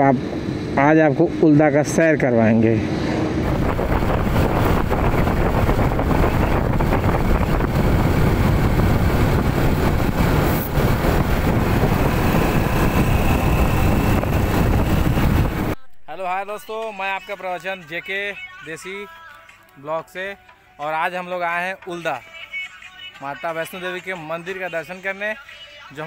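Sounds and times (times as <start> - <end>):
road and engine noise: 0.0 - 15.8
wind buffeting microphone: 2.7 - 15.8.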